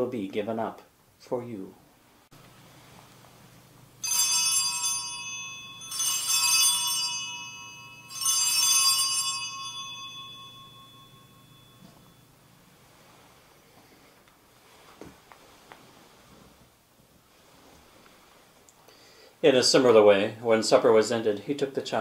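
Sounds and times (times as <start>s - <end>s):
altar bells ringing: 4.0s - 12.4s.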